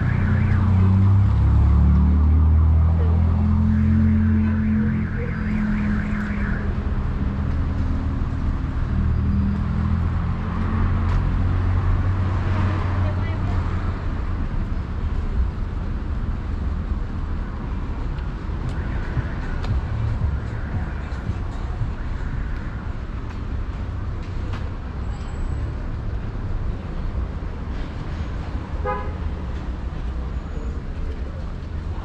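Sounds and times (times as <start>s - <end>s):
car engines rumbling: 0.0s - 32.0s.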